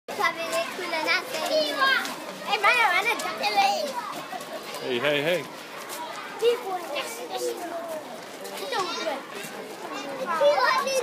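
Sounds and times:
children talking and calling out: 0.1 - 11.0.

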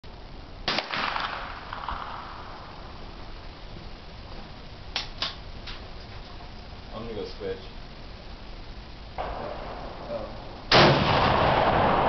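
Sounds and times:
rifle shot with echo: 0.6 - 2.6, 9.2 - 12.0.

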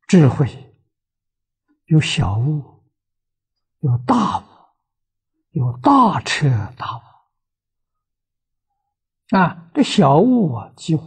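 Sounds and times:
elderly man speaking: 0.0 - 0.8, 1.8 - 2.8, 3.8 - 4.6, 5.5 - 7.2, 9.3 - 11.0.

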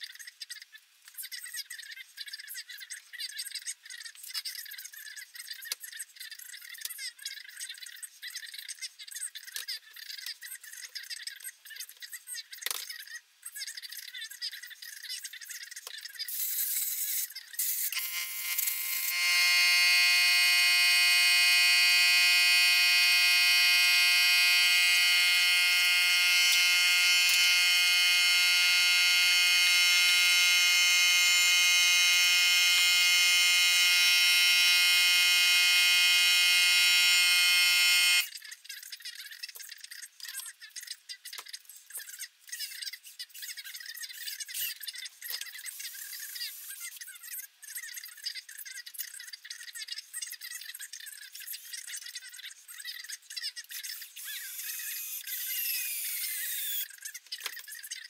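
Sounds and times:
loud steady buzzing drone: 18.0 - 38.3.

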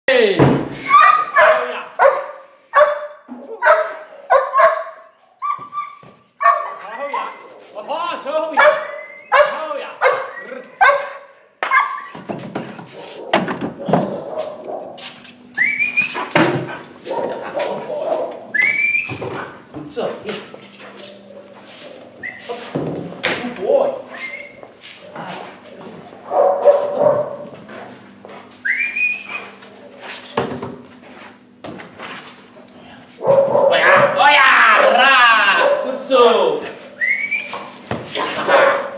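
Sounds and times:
dog high whine: 0.8 - 7.6, 8.6 - 11.1, 11.7 - 13.4, 14.2 - 17.5, 28.6 - 30.2
dog barking loudly: 0.9 - 7.6, 8.5 - 12.2, 17.0 - 18.4, 26.2 - 27.5, 33.2 - 36.0, 38.2 - 38.9.

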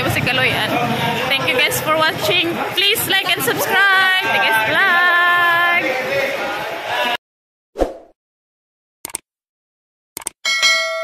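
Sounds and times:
notification bell ding: 10.4 - 11.0.

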